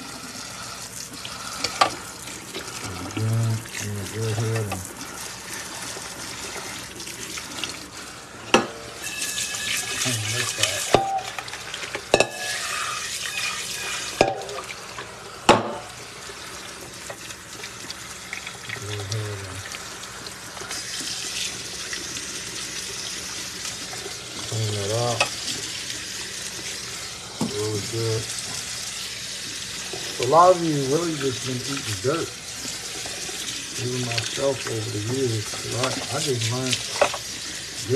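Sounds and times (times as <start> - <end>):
faucet water splashing: 0.0 - 37.9.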